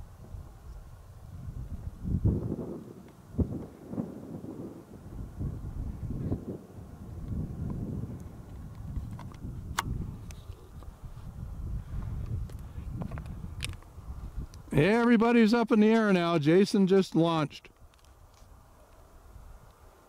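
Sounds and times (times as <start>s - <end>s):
wind buffeting microphone: 0.0s - 15.3s, 17.8s - 20.0s.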